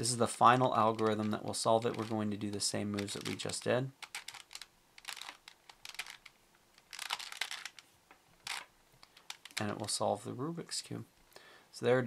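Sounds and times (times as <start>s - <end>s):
plastic puzzle cube clicking: 0.8s - 9.8s.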